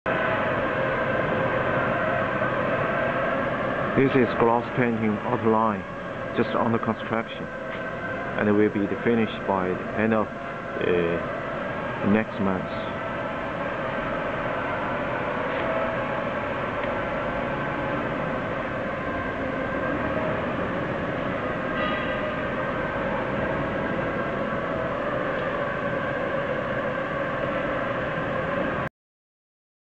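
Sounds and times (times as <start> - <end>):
steady mechanical drone: 0.1 - 28.9.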